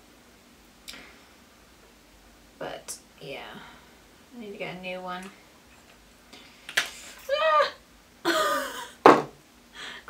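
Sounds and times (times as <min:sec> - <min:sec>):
woman groaning: 0:07.3 - 0:08.9.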